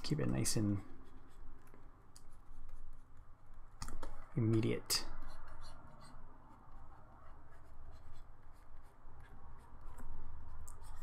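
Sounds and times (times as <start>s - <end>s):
stylus scratching on graphics tablet: 0.2s - 3.3s, 5.0s - 11.0s.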